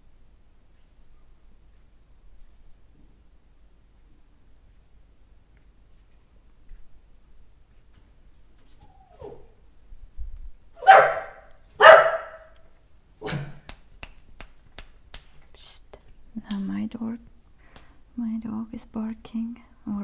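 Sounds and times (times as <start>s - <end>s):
dog barking: 10.8s - 12.5s.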